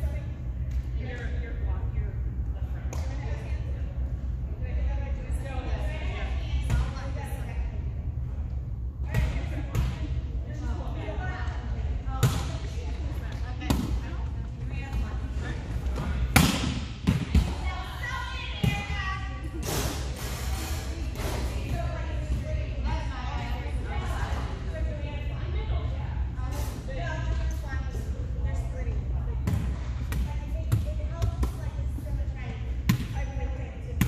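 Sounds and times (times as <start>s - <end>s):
players' voices in large hall: 0.0s - 34.0s.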